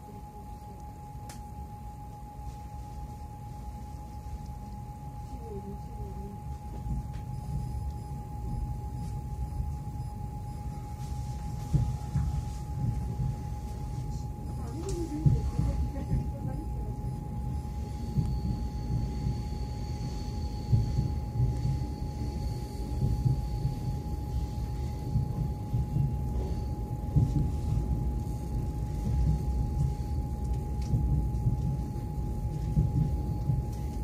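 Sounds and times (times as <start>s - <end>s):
high electrical hum: 0.0s - 34.0s
electric train rumbling on track: 2.5s - 34.0s.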